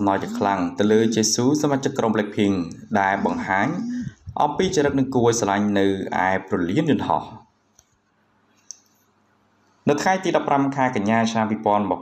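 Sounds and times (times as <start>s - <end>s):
person narrating: 0.0s - 7.4s.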